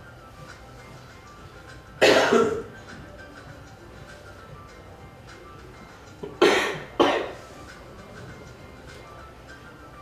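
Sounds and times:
person coughing: 0:02.0 - 0:02.7, 0:06.3 - 0:07.4.

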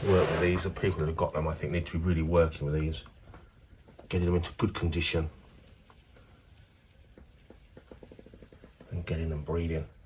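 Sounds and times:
faint soft ticks: 0:05.6 - 0:09.1.

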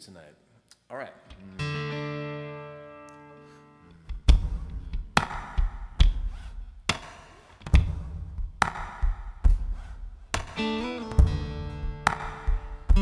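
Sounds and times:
acoustic guitar chord ringing: 0:01.4 - 0:03.9, 0:10.6 - 0:13.0
hand slapping guitar body: 0:04.0 - 0:13.0.

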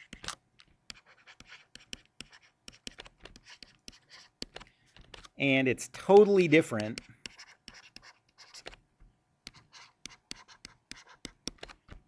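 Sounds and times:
stylus tapping and scratching on screen: 0:00.0 - 0:05.4, 0:06.0 - 0:12.0.

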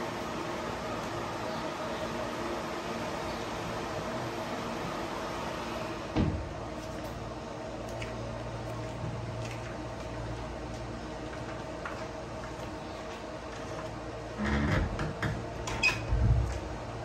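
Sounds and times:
drying cage fans humming: 0:00.0 - 0:17.0.

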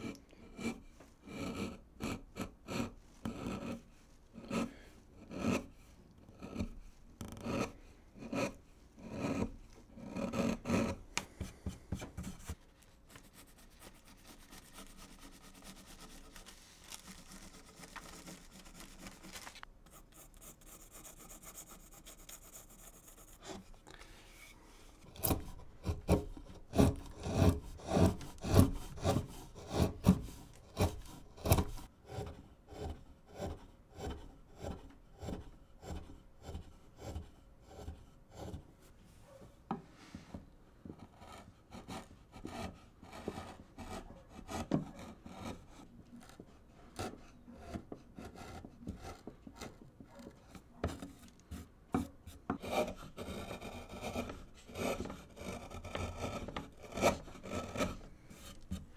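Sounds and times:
wood-carving gouge cutting wood: 0:00.0 - 0:12.6, 0:13.2 - 0:23.7, 0:25.0 - 0:38.7, 0:41.0 - 0:58.9
hand scraping over wood: 0:02.4 - 0:31.9, 0:41.2 - 0:58.9.

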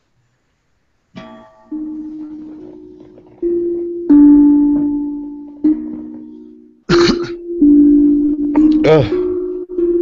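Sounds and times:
low ringing instrument notes: 0:01.2 - 0:10.0.

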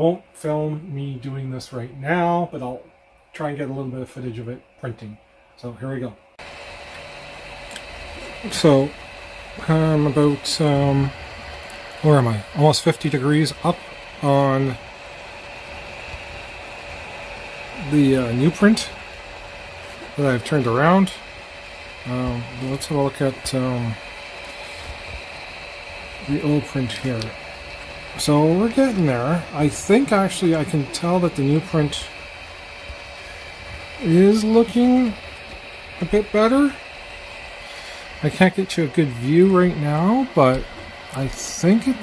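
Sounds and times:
printer fans and motors whirring: 0:00.0 - 0:42.0
thin high whine: 0:00.0 - 0:42.0.

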